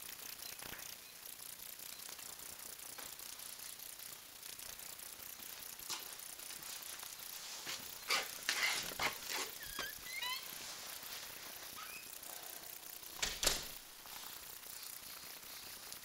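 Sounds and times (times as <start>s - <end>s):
door squeaking: 8.1s - 10.6s, 11.8s - 12.1s, 13.2s - 13.8s
door clicks and rattles: 13.1s - 13.8s
door thud: 13.2s - 13.8s.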